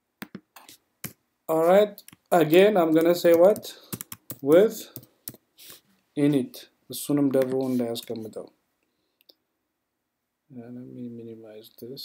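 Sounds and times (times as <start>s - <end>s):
man speaking: 1.5s - 3.8s, 4.4s - 5.0s, 6.2s - 8.6s, 10.5s - 12.0s
keyboard and mouse clicks: 2.0s - 2.3s, 2.9s - 5.4s.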